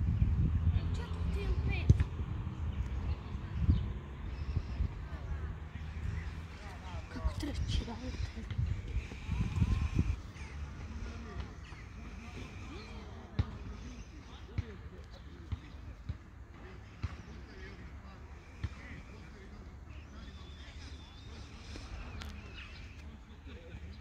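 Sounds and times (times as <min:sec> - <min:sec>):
wind rumbling on microphone: 0:00.0 - 0:10.3
distant voices: 0:00.2 - 0:24.0.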